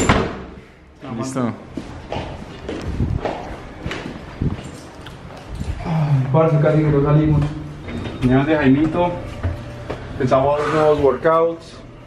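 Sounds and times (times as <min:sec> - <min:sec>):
footsteps on tiled floor: 0:01.6 - 0:07.6.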